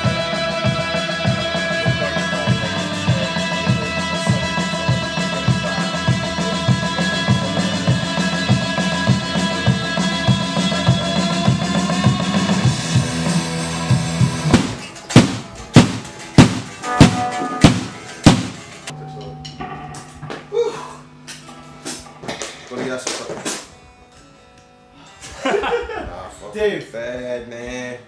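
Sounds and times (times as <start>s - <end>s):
drum and cymbal strokes: 0.0s - 18.9s
rock band playing: 0.0s - 18.9s.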